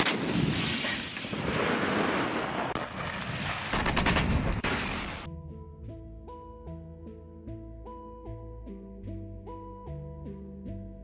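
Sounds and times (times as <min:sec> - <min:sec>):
artillery gun firing: 0:00.0 - 0:05.3.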